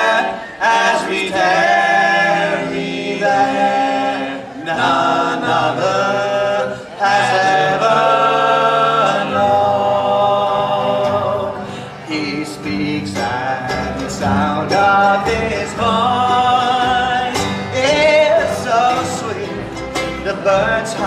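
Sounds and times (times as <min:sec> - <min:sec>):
acoustic guitar: 0:00.0 - 0:21.0
mandolin: 0:00.0 - 0:21.0
men singing in harmony: 0:00.0 - 0:21.0
upright bass: 0:00.0 - 0:21.0.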